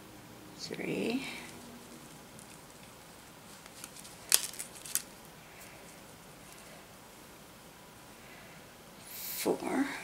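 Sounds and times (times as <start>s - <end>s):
needle and thread rustling through cloth: 1.2s - 5.0s.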